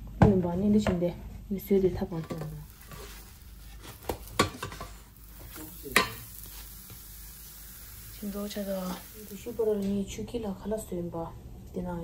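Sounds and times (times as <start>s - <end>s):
pancake sizzling in pan: 2.0s - 10.4s.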